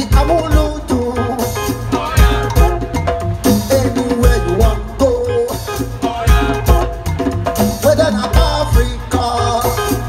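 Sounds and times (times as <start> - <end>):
live band playing upbeat groove: 0.0 - 10.0
steady drum beat: 0.0 - 10.0.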